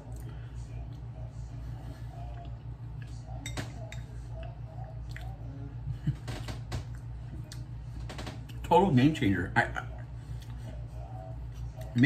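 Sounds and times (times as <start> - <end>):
steady low hum: 0.0 - 12.0
chewing: 4.2 - 5.4, 10.0 - 12.0.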